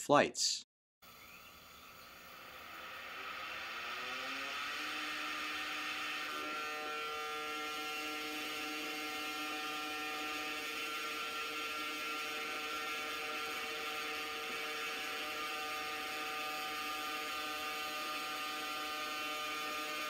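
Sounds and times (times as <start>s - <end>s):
rotors whirring hum: 1.1s - 20.0s.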